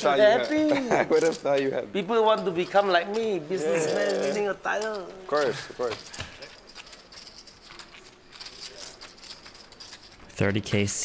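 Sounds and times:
clay poker chips clicking: 2.3 - 10.4.

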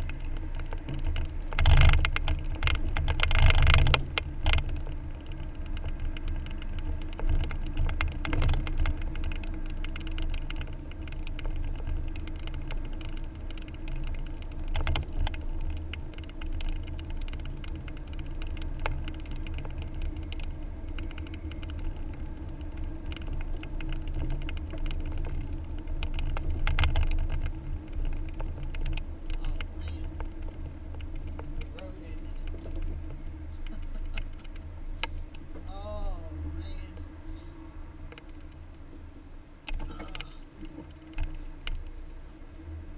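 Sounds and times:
small clicks and rattles: 0.0 - 42.2
car engine and road rumble: 0.0 - 42.9.

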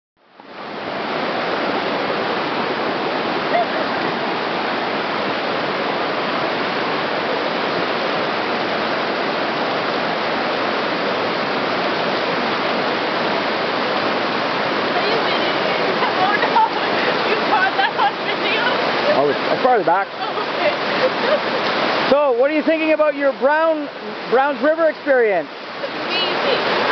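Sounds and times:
river rapids rushing over rocks: 0.3 - 26.9.

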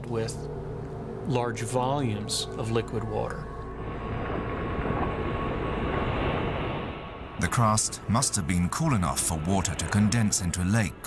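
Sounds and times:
faint steady tone: 0.0 - 11.0
low rushing noise: 0.0 - 11.0.

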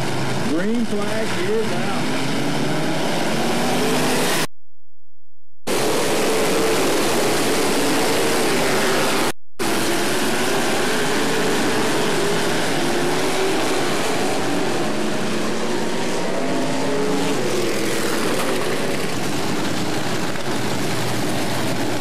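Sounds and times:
race car engines: 0.0 - 4.5, 5.7 - 22.0.

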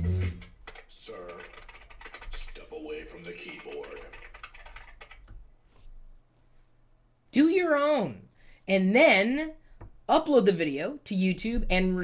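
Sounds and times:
laptop keyboard typing: 0.0 - 5.4.

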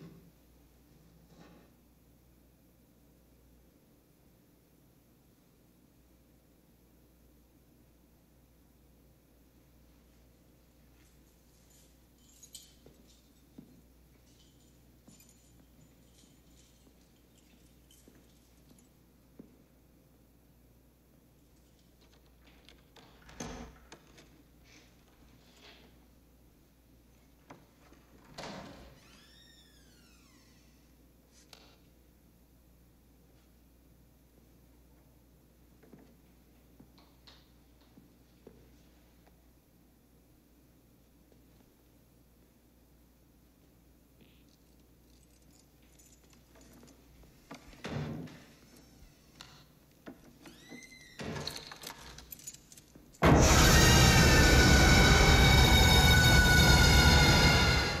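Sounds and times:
door hinge creaking: 50.3 - 52.3, 53.2 - 58.0
shrill dissonant stinger: 53.2 - 58.0.

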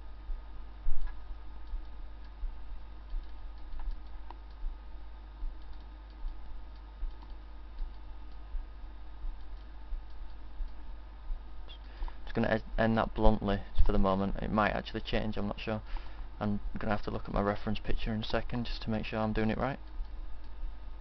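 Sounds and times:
low electrical hum: 0.0 - 21.0
computer mouse clicking: 3.0 - 4.6, 5.5 - 8.4, 9.3 - 10.8, 19.8 - 20.6.

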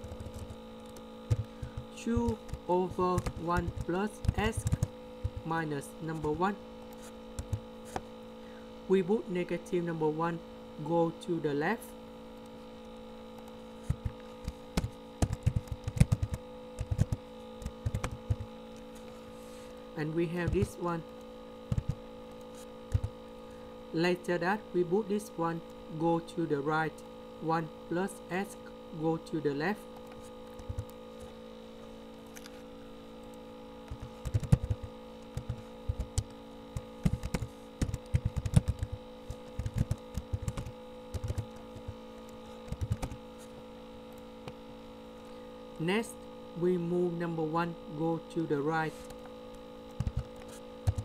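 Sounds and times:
steady electrical hum: 0.0 - 51.0.

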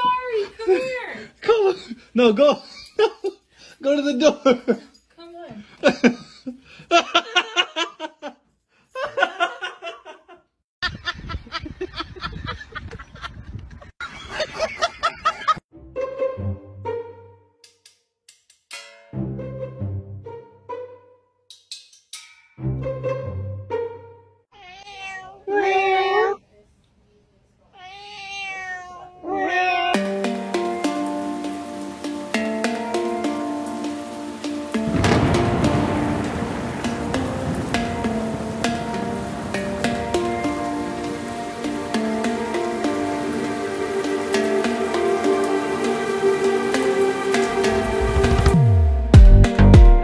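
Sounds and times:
background music with sustained notes: 15.7 - 17.8, 18.8 - 21.4, 22.6 - 24.4, 30.0 - 50.0
pet crying: 24.5 - 26.4, 27.8 - 30.0.

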